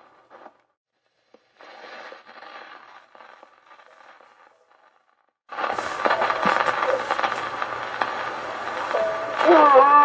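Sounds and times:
record surface hiss and crackle: 0.0s - 10.0s.

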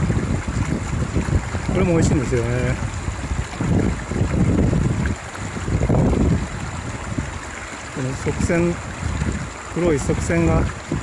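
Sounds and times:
water rushing over rocks: 0.0s - 11.0s
wind rumbling on microphone: 0.0s - 11.0s.

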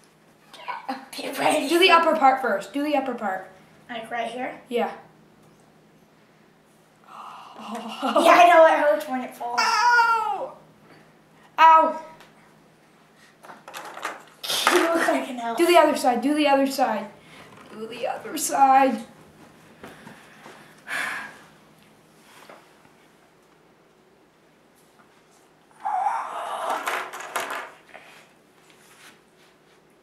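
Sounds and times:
boy's voice: 0.5s - 2.2s, 7.7s - 10.6s, 11.6s - 12.2s, 14.4s - 17.1s
boy's pained vocal outburst: 9.4s - 10.6s, 25.8s - 27.1s.

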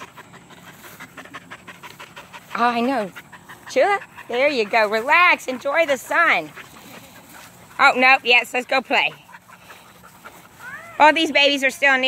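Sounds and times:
dog panting: 0.0s - 12.0s.

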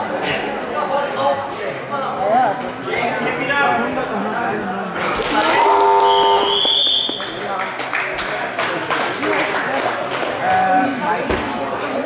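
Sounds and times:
voices and shouts: 5.2s - 6.6s
timer buzzer: 5.4s - 6.7s
whistle blast: 5.5s - 7.3s.

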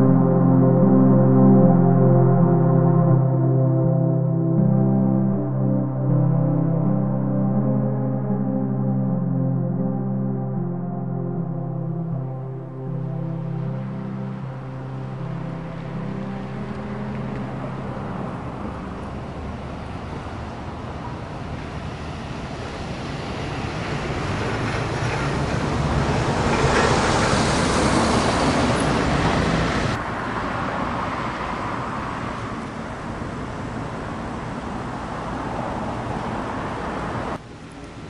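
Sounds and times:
low music drone: 0.0s - 21.4s.

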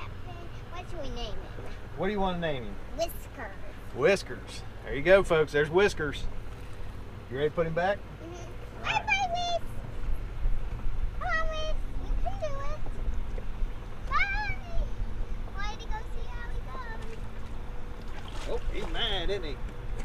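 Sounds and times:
low rumble of wind and river: 0.0s - 20.0s.

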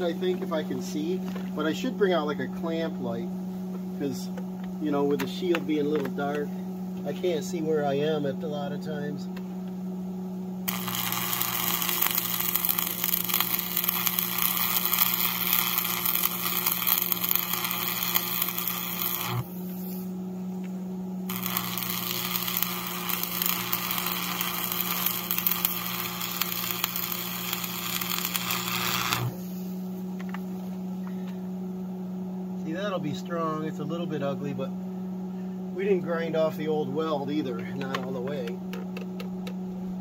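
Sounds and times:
welder hum: 0.0s - 40.0s
welding arc crackling: 10.6s - 19.8s, 21.3s - 30.3s.

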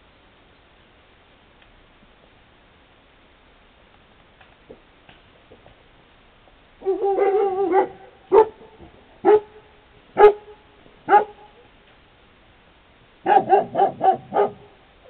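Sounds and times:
puppy barking high: 6.8s - 9.6s, 10.2s - 11.6s, 13.2s - 14.8s
puppy yelping: 13.3s - 14.6s.

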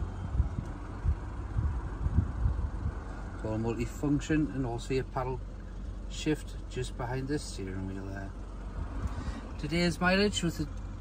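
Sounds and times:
wind on microphone: 0.0s - 3.1s.

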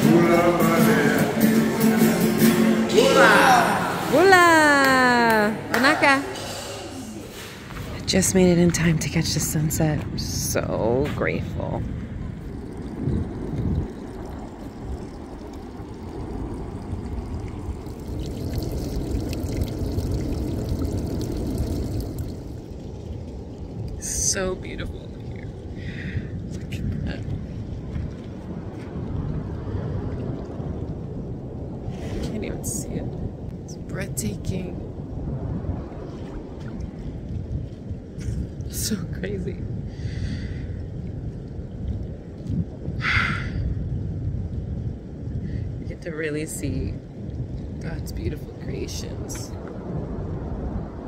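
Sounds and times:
water at shore: 0.0s - 51.0s
wind on microphone: 0.0s - 51.0s
low bumps: 7.0s - 22.7s.

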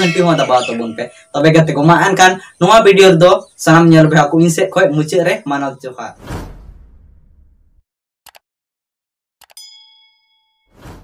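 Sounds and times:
whoosh: 6.2s - 7.7s
notification bell ding: 9.6s - 10.7s.

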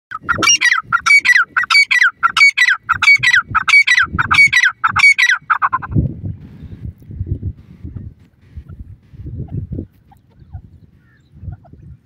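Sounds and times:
francolin calling: 0.1s - 6.0s.

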